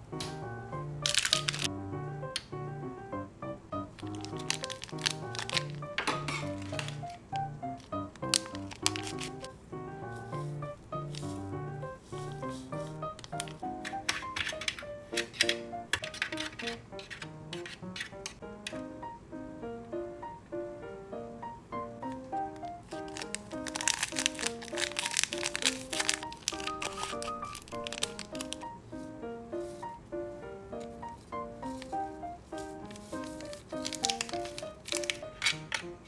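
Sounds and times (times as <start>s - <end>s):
background music with light melody: 0.0s - 36.0s
foil sachets crinkling: 1.0s - 1.7s, 3.9s - 18.3s, 22.1s - 30.0s, 30.8s - 36.0s.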